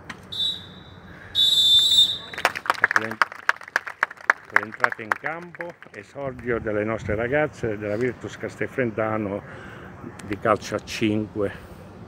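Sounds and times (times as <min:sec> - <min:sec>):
referee's whistle: 0:00.3 - 0:02.4.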